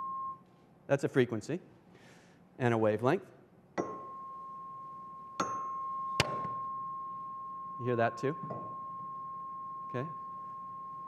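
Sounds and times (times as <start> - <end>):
steady pure tone: 3.8 - 11.0.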